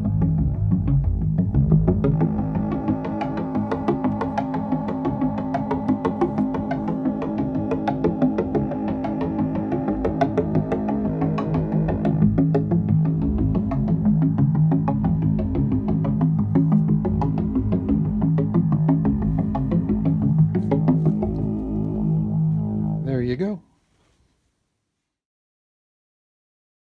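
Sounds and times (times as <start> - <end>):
synthesizer drone: 0.0 - 23.4
fast sequenced synth notes: 0.0 - 23.6.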